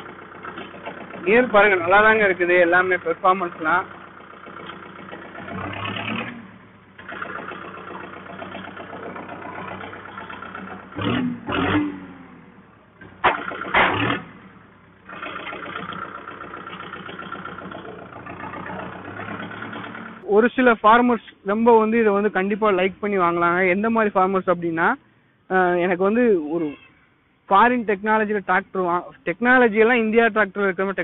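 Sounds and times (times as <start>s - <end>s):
tractor diesel engine running: 0.0s - 21.1s.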